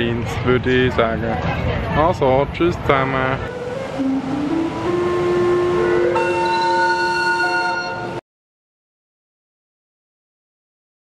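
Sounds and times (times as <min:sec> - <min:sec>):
steam calliope playing held notes: 0:03.5 - 0:08.2.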